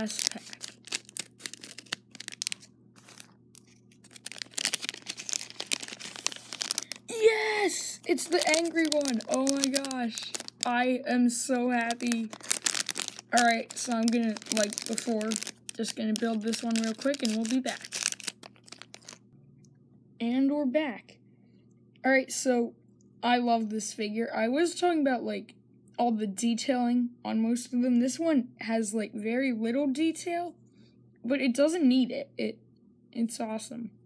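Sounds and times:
plastic packet crinkling: 0.0 - 7.2, 8.0 - 10.8, 11.6 - 19.2.

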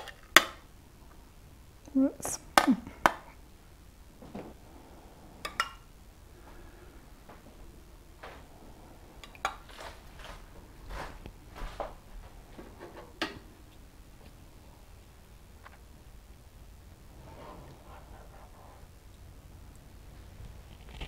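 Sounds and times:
faint handling sounds: 6.3 - 16.0.

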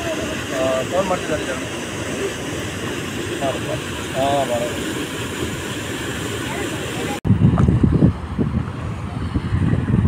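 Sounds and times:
water rushing over a spillway: 0.0 - 10.0.

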